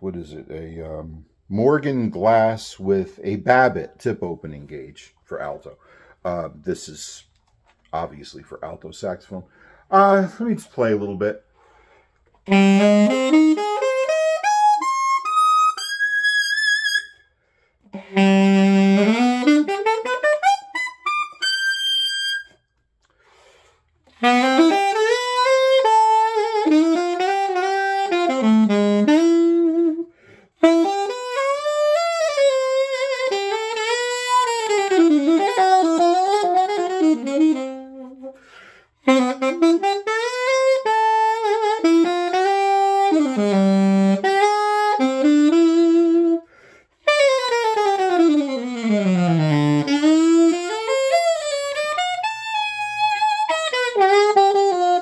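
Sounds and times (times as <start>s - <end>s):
alto saxophone jazz phrases: 0.0s - 17.0s, 17.6s - 22.5s, 23.2s - 55.0s.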